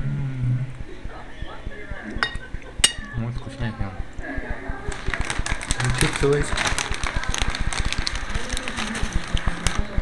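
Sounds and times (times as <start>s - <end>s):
plastic chip packet crinkling: 4.9s - 10.0s.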